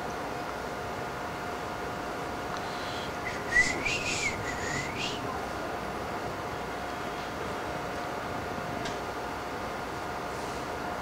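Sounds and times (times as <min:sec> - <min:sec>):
faint steady hum: 0:00.0 - 0:11.0
person whistling gliding note: 0:03.0 - 0:05.2.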